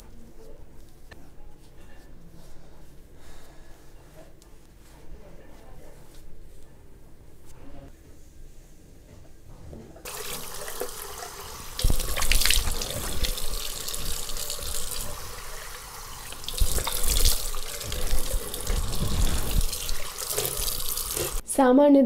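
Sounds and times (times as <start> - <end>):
tap running into a sink: 10.1 - 15.3, 16.3 - 21.2
water splashing onto face: 10.1 - 21.4.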